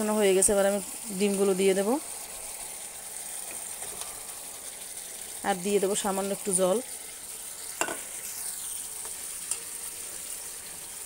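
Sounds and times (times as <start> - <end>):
gravy simmering in a pan: 0.2 - 11.0.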